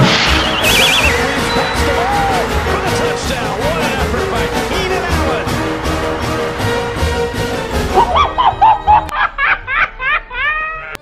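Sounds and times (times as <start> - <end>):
cartoon cat cackling laugh: 8.0 - 11.0.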